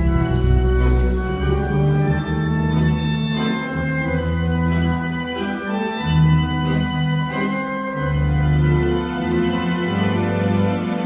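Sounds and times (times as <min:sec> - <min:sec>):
pipe organ playing a waltz: 0:00.0 - 0:11.0.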